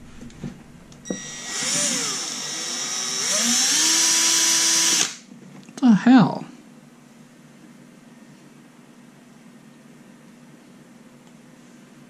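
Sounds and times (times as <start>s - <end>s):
cordless drill running: 1.1s - 5.2s.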